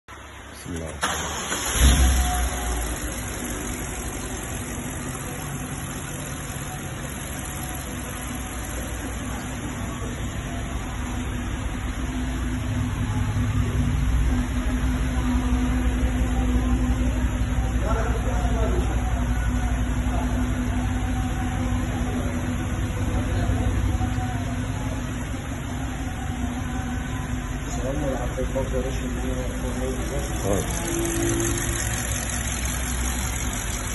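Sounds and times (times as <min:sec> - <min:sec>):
car engine idling: 0:00.1 - 0:33.9.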